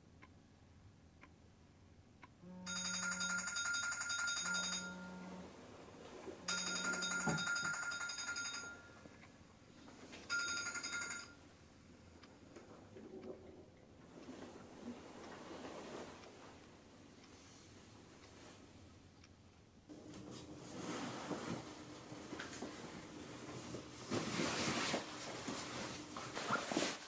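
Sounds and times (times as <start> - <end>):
low steady buzz: 0.1 - 3.5, 4.3 - 7.1
phone ringing: 2.4 - 5.5, 6.4 - 9.2, 10.2 - 11.4.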